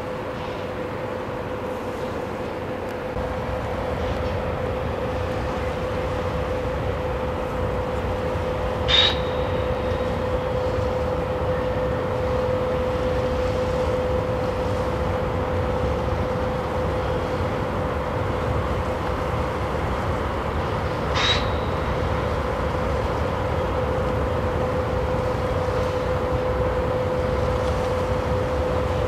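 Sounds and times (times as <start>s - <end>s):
constant hum: 0.0s - 29.0s.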